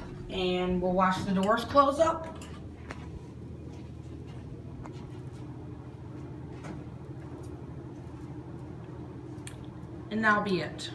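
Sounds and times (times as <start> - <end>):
low steady hum: 0.0 - 10.9.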